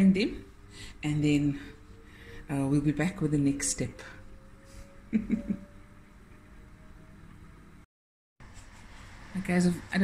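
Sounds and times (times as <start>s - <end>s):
faint steady hum: 0.0s - 7.9s
woman's short laugh: 5.1s - 5.7s.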